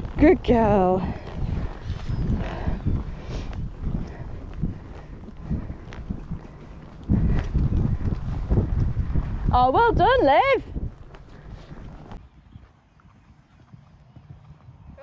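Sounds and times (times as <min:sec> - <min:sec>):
wind rumble on microphone: 0:00.0 - 0:12.6
horse hoofbeats on sand: 0:00.0 - 0:15.0.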